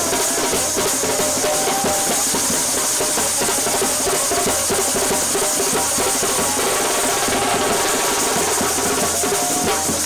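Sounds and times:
fast steady drumbeat: 0.0s - 10.0s
brass band playing: 3.0s - 9.8s.

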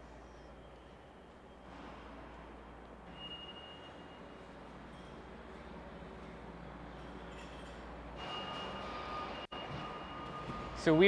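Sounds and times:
low machinery hum: 0.0s - 11.0s.

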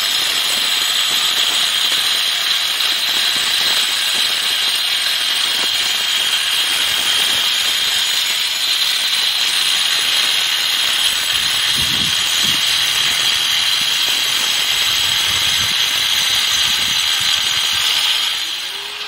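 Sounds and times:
angle grinder cutting concrete: 0.0s - 19.0s.

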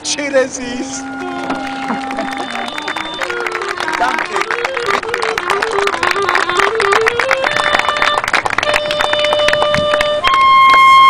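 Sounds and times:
solo clarinet: 0.6s - 11.0s
audience clapping: 1.2s - 11.0s.

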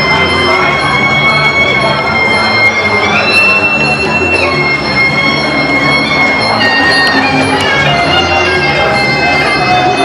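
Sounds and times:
reedy oboe melody: 0.0s - 10.0s.

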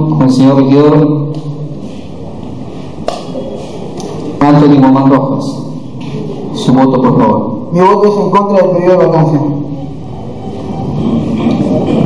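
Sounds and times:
room noise: 0.0s - 12.0s.

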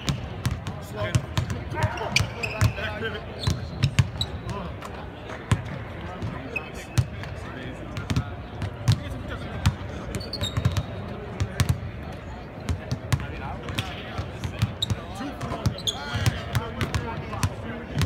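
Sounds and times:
basketballs bouncing on hardwood: 0.0s - 2.8s.

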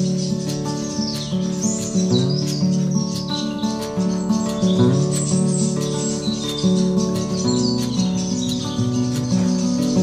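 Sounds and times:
high bird chirps: 0.0s - 10.0s
instrumental music with light beat: 0.0s - 10.0s.

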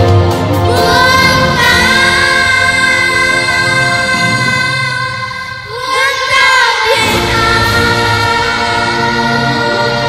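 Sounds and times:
musical accompaniment: 0.0s - 10.0s
children's choir singing: 0.6s - 10.0s.

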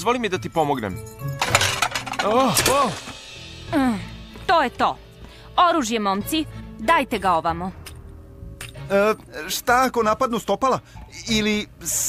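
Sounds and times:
sharp clattering: 1.3s - 3.2s.

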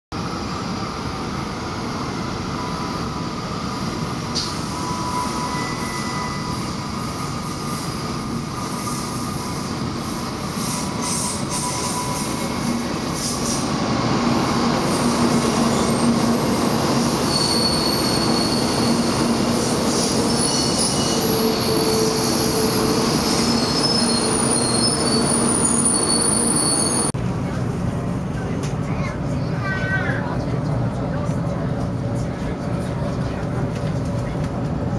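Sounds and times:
train running noise: 0.2s - 34.9s
high squealing brakes: 2.5s - 13.7s, 14.8s - 27.1s.

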